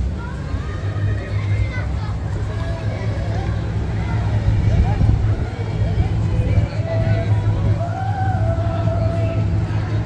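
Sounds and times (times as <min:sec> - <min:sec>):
people talking: 0:00.0 - 0:10.0
steady low rumble: 0:00.0 - 0:10.0.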